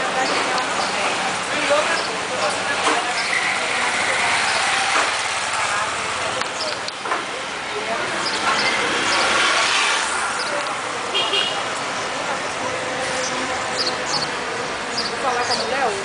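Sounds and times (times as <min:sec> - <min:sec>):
indistinct voices: 0:00.0 - 0:16.0
road traffic noise: 0:00.0 - 0:16.0.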